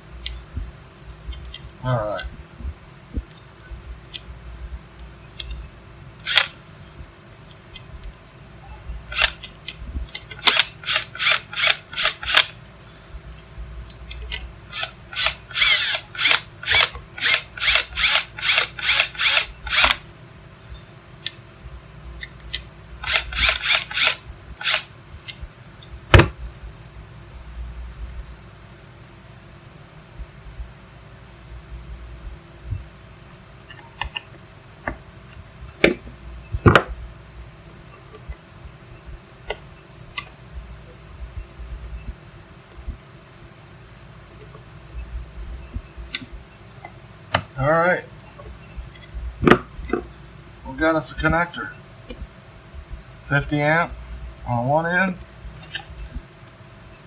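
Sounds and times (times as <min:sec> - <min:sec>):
cordless drill driving screws: 0:06.2 - 0:06.5, 0:10.4 - 0:12.5, 0:14.7 - 0:20.0, 0:23.0 - 0:24.9
sharp knock: 0:26.1 - 0:26.4.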